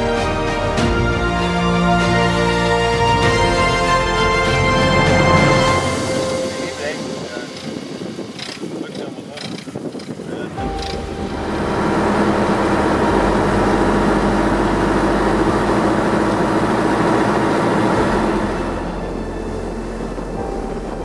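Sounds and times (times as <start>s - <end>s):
motorboat engine: 0.0s - 21.0s
wind and water rushing: 1.5s - 21.0s
voices: 6.4s - 11.1s.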